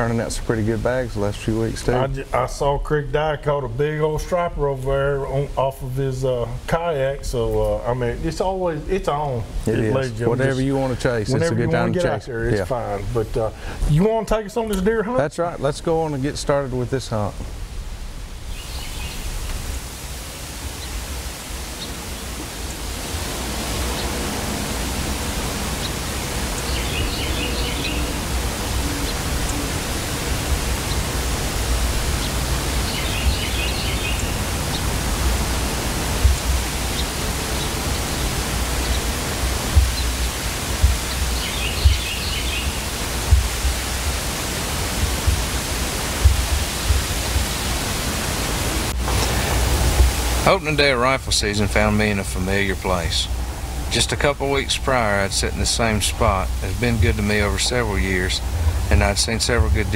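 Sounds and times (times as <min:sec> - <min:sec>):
low thumps: 0:22.4 - 0:50.6, 0:56.2 - 0:59.9
bird chittering call: 0:25.8 - 0:30.1, 0:32.2 - 0:34.9, 0:41.0 - 0:43.0.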